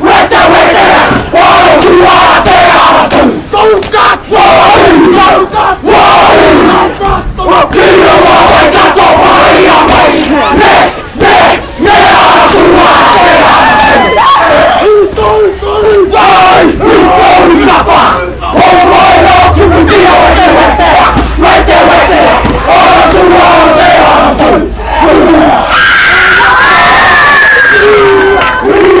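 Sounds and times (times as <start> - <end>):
boys shouting chant in unison: 0.0 - 27.2
high drawn-out cry: 10.4 - 15.0, 24.8 - 29.0.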